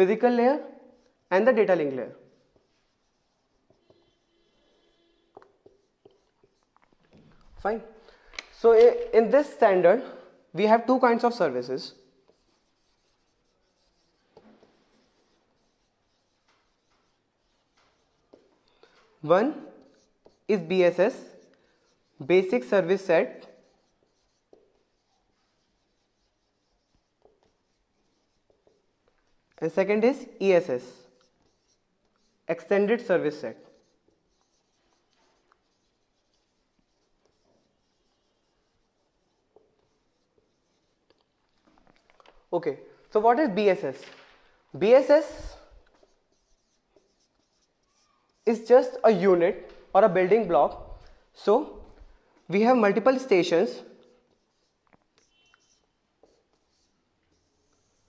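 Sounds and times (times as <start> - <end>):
marker scratch: 0.0 - 8.0, 8.6 - 42.6, 44.8 - 58.0
marker writing on whiteboard: 0.0 - 58.0.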